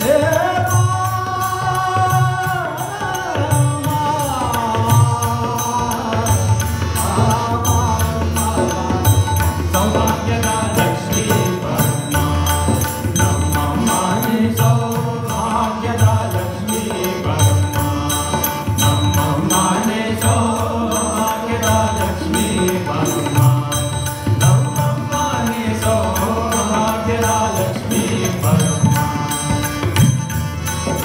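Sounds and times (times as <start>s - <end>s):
man singing: 0.0s - 29.9s
harmonium: 0.0s - 31.0s
tabla: 0.0s - 31.0s
tanpura drone: 0.0s - 31.0s.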